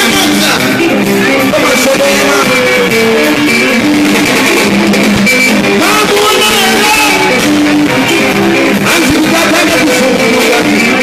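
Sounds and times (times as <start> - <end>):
electric guitars playing melody: 0.0 - 11.0
live band music: 0.0 - 11.0.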